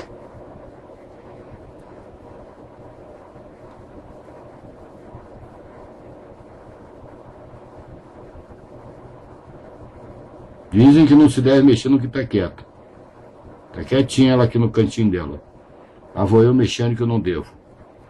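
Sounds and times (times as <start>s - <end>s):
low hum with faint hiss: 0.0s - 18.0s.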